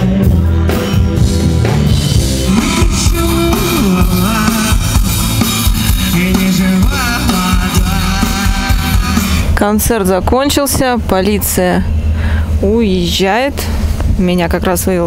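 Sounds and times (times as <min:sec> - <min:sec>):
live rock band playing: 0:00.0 - 0:09.6
person singing: 0:02.2 - 0:09.6.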